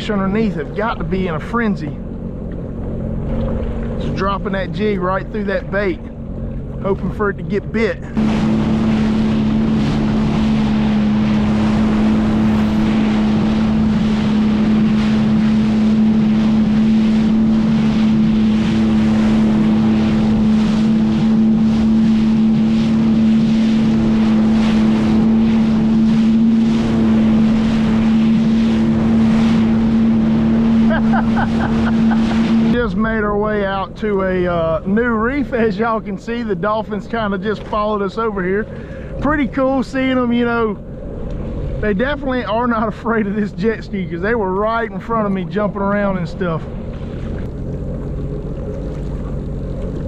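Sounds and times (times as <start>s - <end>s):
personal watercraft engine drone: 0.0s - 50.0s
rushing water spray: 8.1s - 32.9s
wind on microphone: 8.1s - 33.0s.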